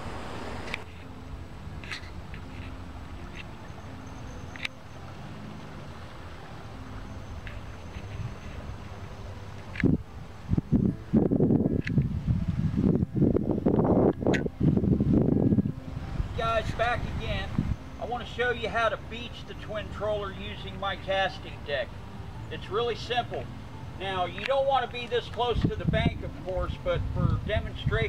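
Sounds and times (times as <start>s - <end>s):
small clicks: 4.5s - 4.8s
wind buffeting microphone: 7.0s - 17.8s, 24.7s - 28.0s.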